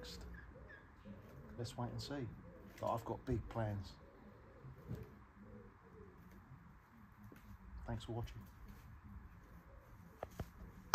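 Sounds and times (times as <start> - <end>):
bird cooing: 0.0 - 7.8, 8.4 - 10.9.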